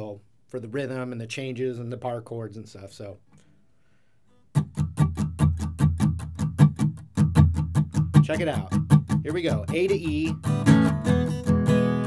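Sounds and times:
acoustic guitar strummed with a pick: 4.5 - 12.0.

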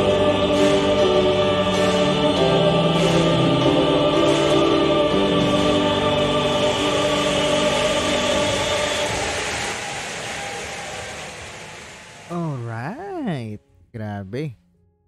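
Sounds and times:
choir singing held chords: 0.0 - 11.9.

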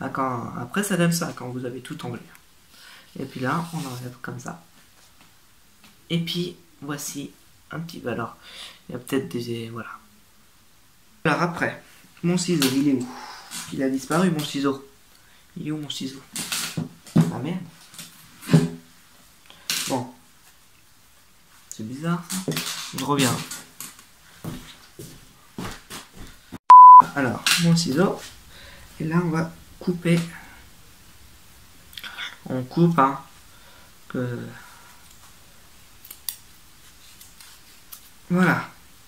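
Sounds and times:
breathy hiss: 2.6 - 3.2, 8.3 - 8.9, 12.9 - 13.9, 28.2 - 29.0, 30.2 - 31.2, 33.2 - 35.8.

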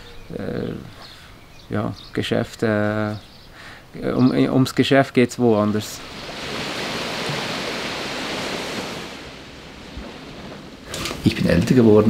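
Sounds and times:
waves washing onto beach: 5.9 - 11.6.

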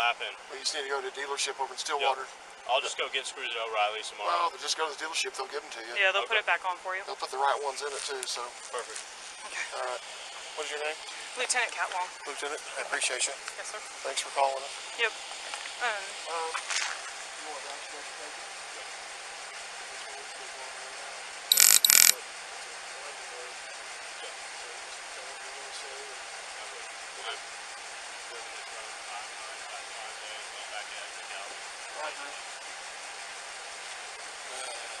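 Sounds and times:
outdoor background hiss: 0.0 - 35.0
faint distant voices: 24.2 - 27.4, 28.2 - 32.4.

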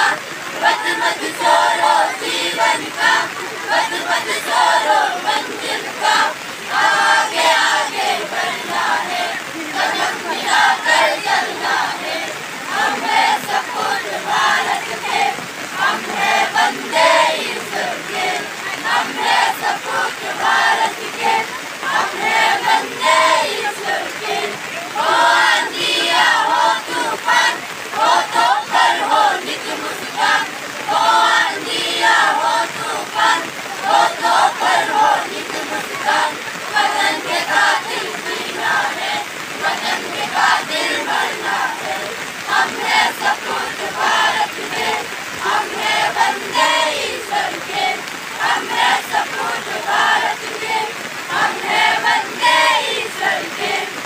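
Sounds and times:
children singing in chorus: 0.0 - 54.0.

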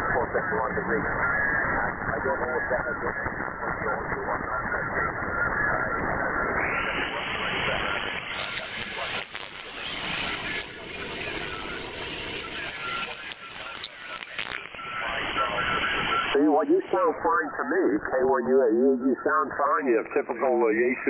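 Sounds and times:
shortwave radio hiss: 0.0 - 21.0
faint steady tone: 9.6 - 16.4.

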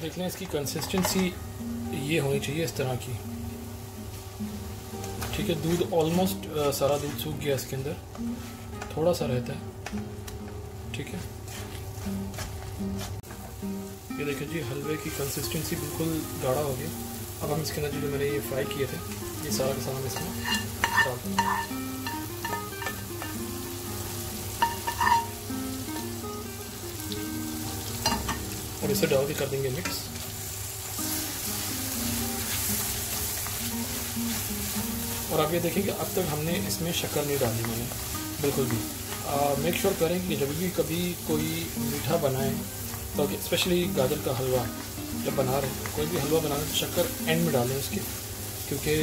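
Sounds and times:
background music with held notes: 0.0 - 49.0
halwa sizzling in a wok: 0.0 - 49.0
spatula scraping a pan: 20.1 - 23.3, 24.6 - 25.4.

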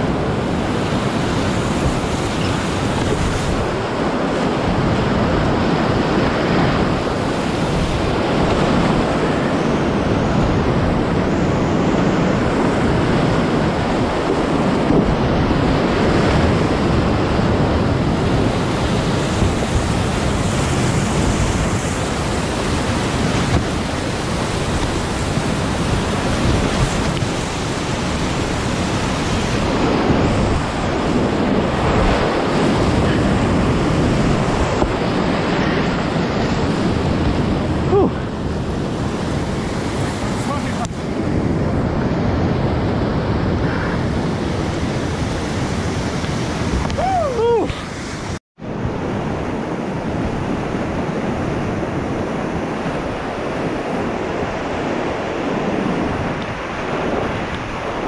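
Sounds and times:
whitewater rapids rushing: 0.0 - 42.2.

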